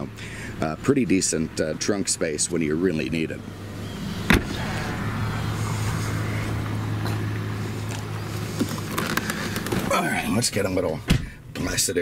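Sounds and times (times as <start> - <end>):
car engine idling: 0.0 - 12.0
car trunk lid shutting: 3.8 - 4.9.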